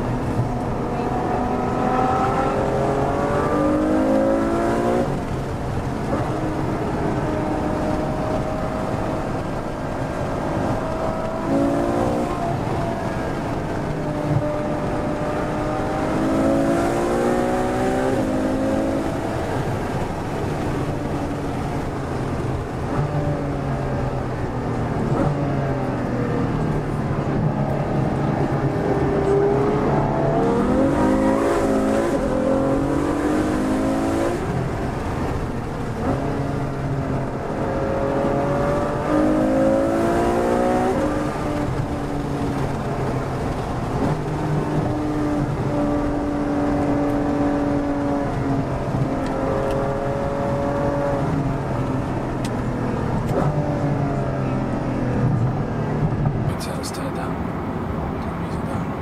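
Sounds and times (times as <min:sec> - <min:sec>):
sports car engine accelerating: 0:00.0 - 0:59.0.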